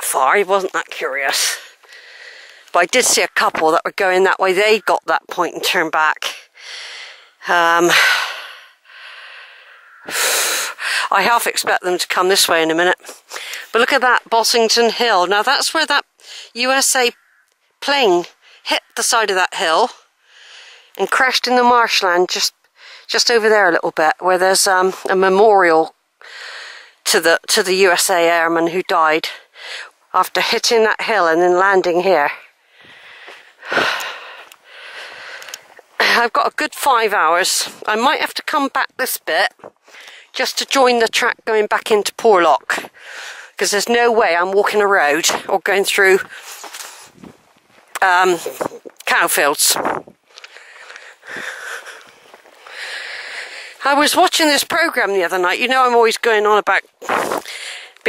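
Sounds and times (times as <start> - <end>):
man breathing: 1.7 - 2.7, 6.5 - 7.4, 8.2 - 11.0, 32.6 - 35.8, 50.2 - 53.8, 57.4 - 58.0.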